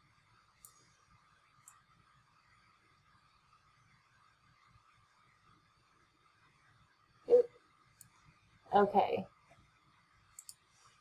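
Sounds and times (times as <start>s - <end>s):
faint electronic whine: 0.0s - 11.0s.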